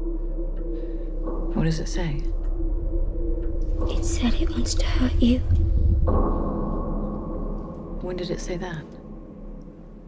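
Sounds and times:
deep impact hit: 1.0s - 10.0s.

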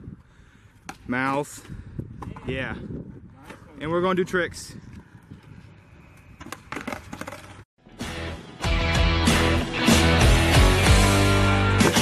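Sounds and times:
skateboard rolling on concrete: 4.9s - 7.7s.

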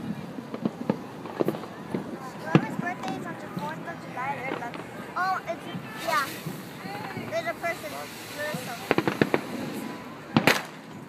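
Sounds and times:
fireworks cracking and banging: 0.0s - 11.0s.

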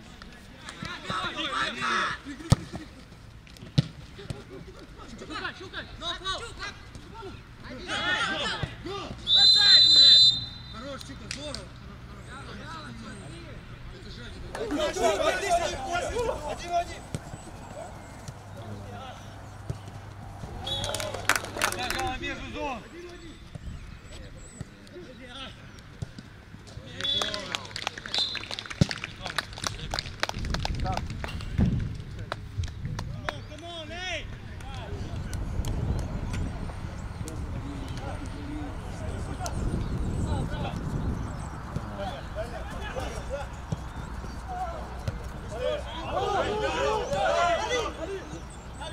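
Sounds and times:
footballers shouting calls: 0.4s - 3.0s, 4.2s - 25.7s, 26.3s - 28.6s, 33.2s - 48.9s.

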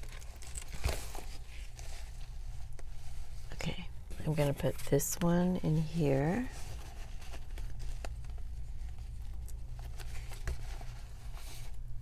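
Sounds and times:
paper rustling: 0.0s - 3.4s, 6.1s - 11.9s.

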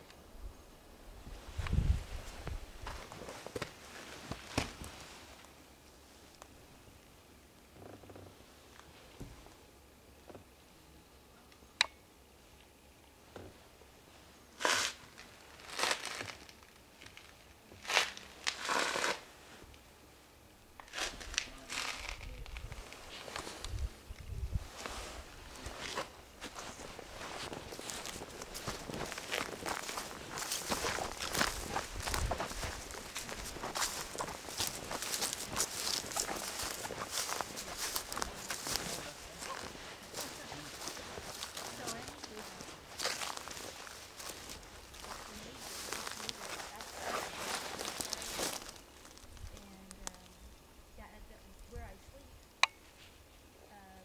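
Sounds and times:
footsteps crunching through dry grass: 1.2s - 5.4s, 14.6s - 19.2s, 20.9s - 50.2s.

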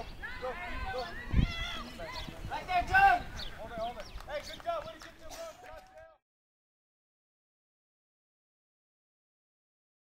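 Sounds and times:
people talking and calling out: 0.0s - 6.2s.

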